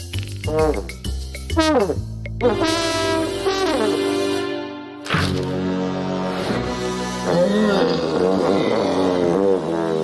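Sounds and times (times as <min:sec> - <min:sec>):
background music: 0:00.0 - 0:10.0
cartoon dinosaur roar: 0:07.2 - 0:10.0.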